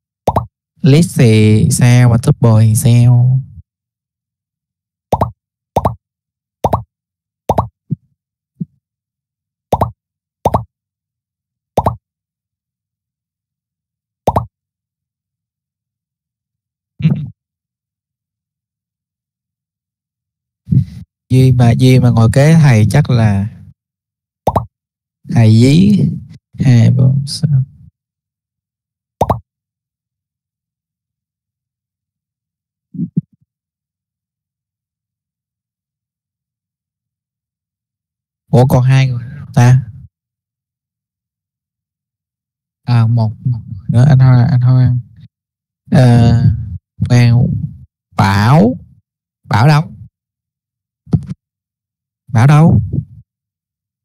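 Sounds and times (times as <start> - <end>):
plopping computer sound effects: 0.3 - 0.5, 14.3 - 14.5, 24.5 - 24.7.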